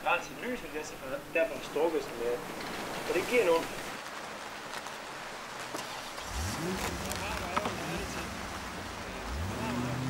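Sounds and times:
faint steady background hiss: 0.0s - 10.0s
vehicle engine rumble: 0.0s - 10.0s.

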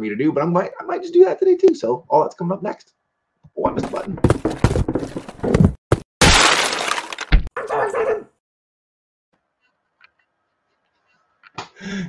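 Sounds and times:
crashing smashing burst: 6.2s - 7.4s.

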